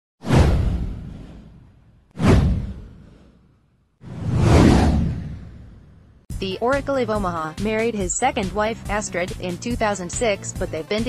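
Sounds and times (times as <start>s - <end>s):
whoosh with deep rumble: 0.2s - 6.3s.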